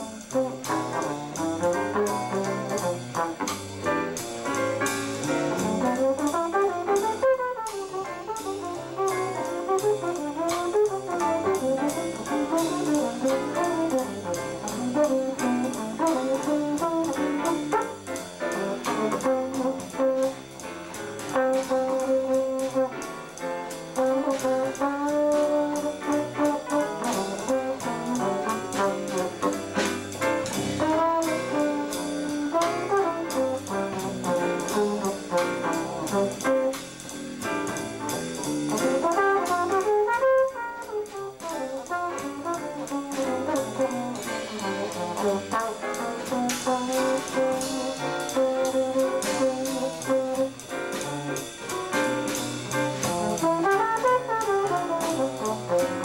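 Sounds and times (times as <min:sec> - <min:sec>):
drums playing swing beat: 0:00.0 - 0:56.0
piano: 0:00.0 - 0:56.0
walking bass: 0:00.0 - 0:56.0
brass lead line: 0:38.8 - 0:50.6, 0:53.1 - 0:56.0.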